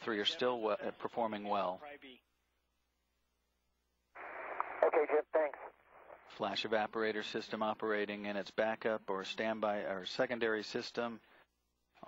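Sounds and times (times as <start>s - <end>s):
radio static hiss: 4.2s - 8.0s
man speaking over radio: 4.6s - 5.8s.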